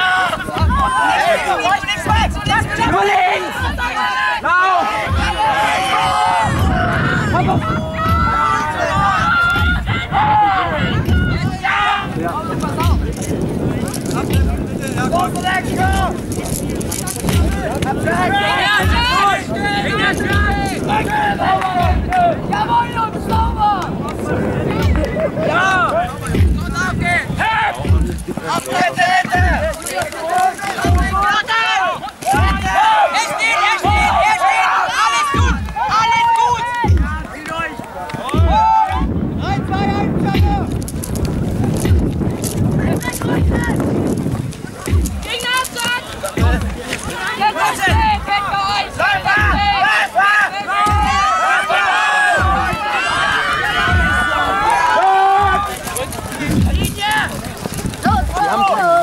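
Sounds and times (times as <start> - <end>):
voices shouting and calling: 0.0 - 59.0
low drum beat: 0.4 - 1.1, 2.0 - 3.9, 5.0 - 30.0, 30.7 - 31.4, 32.2 - 33.0, 33.8 - 34.4, 35.2 - 37.5, 38.3 - 50.1, 50.7 - 51.6, 52.2 - 59.0.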